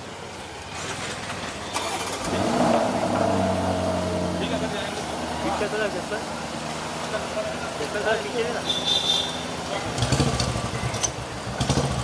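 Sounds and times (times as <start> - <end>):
car engine starting and idling: 0.5 - 8.6.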